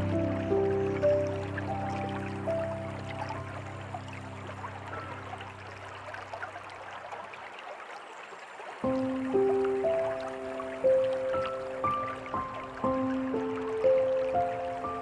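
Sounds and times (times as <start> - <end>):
slow soft piano music: 0.0 - 7.2, 8.8 - 15.0
trickling stream: 0.0 - 15.0.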